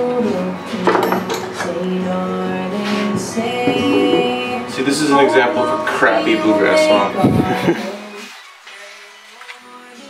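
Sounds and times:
guitar: 0.0s - 10.0s
person singing: 0.0s - 10.0s.

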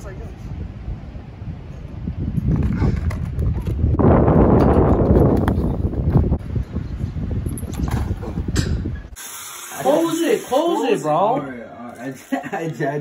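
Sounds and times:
wind rumbling on microphone: 0.0s - 9.2s.

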